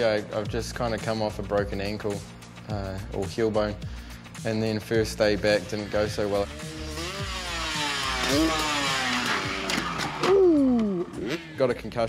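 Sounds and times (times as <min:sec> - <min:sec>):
dirt bike engine revving: 0:06.0 - 0:11.8.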